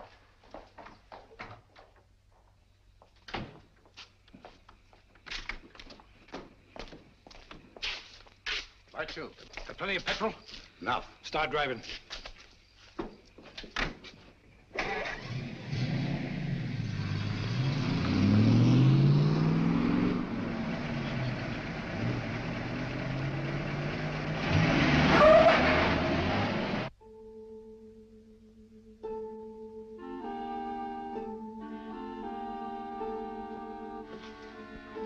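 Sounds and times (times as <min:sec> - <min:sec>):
car engine accelerating: 0:14.8 - 0:26.9.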